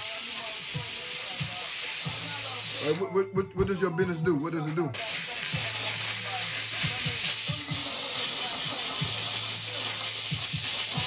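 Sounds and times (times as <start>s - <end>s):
steam cleaner hissing: 0.0s - 3.0s, 5.0s - 11.0s.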